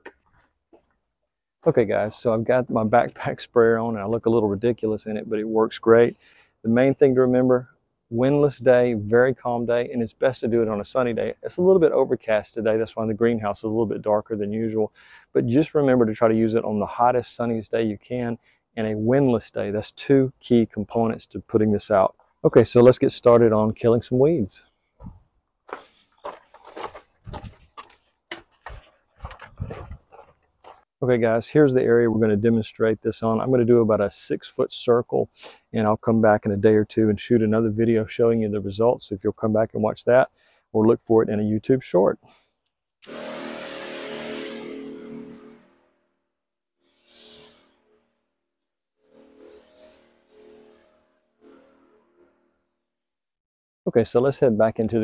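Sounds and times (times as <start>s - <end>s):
footsteps crunching on gravel: 25.7s - 30.9s.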